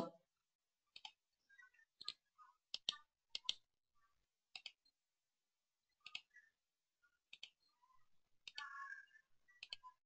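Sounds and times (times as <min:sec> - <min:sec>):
faint computer mouse clicks: 0:02.0 - 0:03.6, 0:04.5 - 0:04.9, 0:06.0 - 0:06.4.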